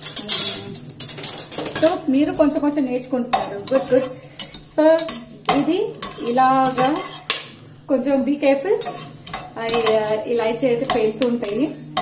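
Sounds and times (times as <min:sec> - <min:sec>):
spatula scraping spices in a pot: 0:00.0 - 0:07.8, 0:08.4 - 0:12.0.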